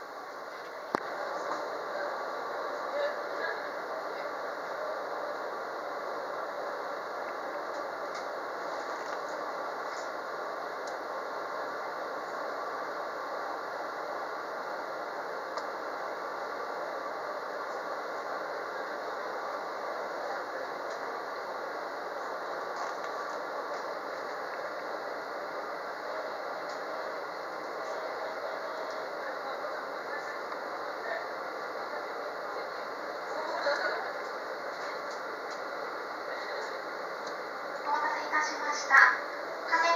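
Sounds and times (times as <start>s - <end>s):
train equipment hum: 0.0s - 39.9s.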